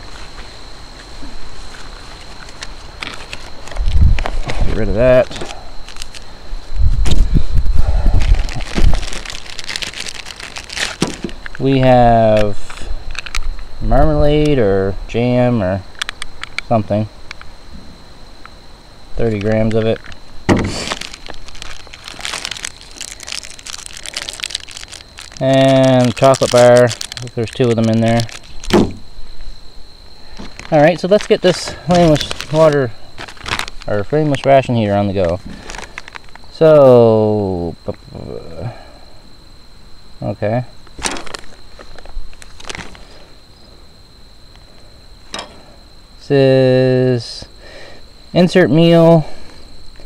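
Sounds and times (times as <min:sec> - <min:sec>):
plastic packaging crinkling: 0:01.7 - 0:06.3, 0:08.1 - 0:11.6, 0:12.4 - 0:13.6, 0:19.2 - 0:28.9, 0:30.4 - 0:36.6, 0:41.0 - 0:43.0.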